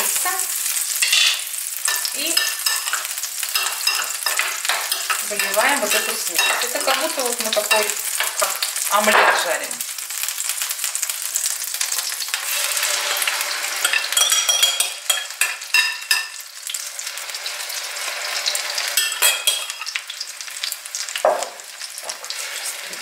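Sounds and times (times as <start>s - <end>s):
oil sizzling in a frying pan: 0.0s - 23.0s
metal spoon scraping pan: 1.0s - 9.5s, 12.4s - 16.4s, 18.2s - 20.0s.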